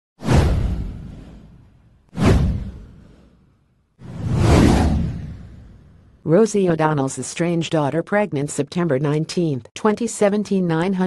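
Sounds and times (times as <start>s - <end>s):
whooshes: 0.2s - 6.2s.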